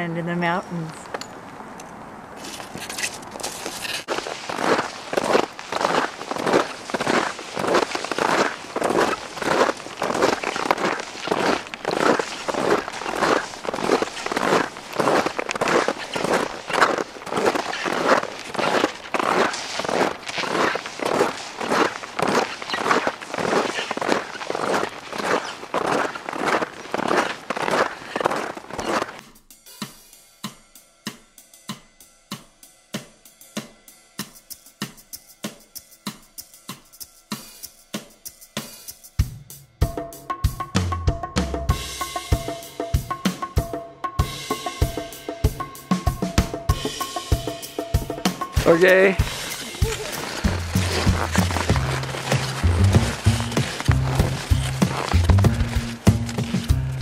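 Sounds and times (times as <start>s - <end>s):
footsteps crunching in snow: 2.3s - 29.4s, 48.4s - 57.0s
music with drum beat: 29.2s - 57.0s.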